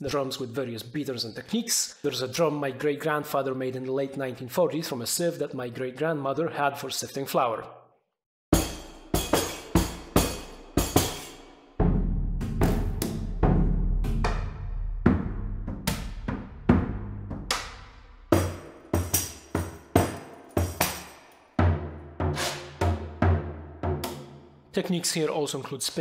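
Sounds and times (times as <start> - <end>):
drum hits ringing out: 8.5 - 24.5.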